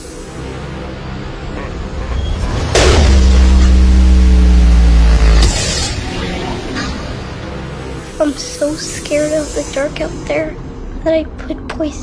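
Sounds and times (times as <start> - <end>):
low buzzy bass drone: 0.0 - 11.0.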